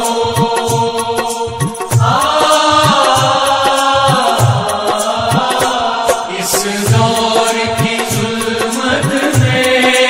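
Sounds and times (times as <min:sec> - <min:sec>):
drums beating: 0:00.0 - 0:10.0
fast high ticking percussion: 0:00.0 - 0:10.0.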